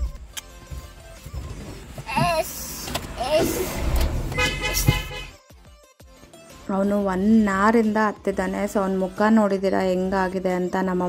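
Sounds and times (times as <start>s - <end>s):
road traffic rumble: 1.6s - 5.4s
vehicle horn: 3.8s - 5.4s.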